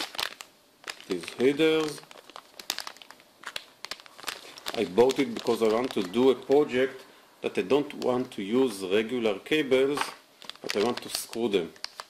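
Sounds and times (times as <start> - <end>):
plastic bag crinkling: 0.0 - 6.8, 10.0 - 12.0.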